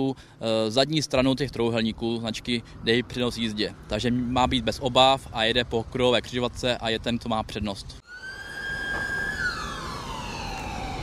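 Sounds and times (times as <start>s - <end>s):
ambulance siren falling in pitch: 8.0s - 11.0s.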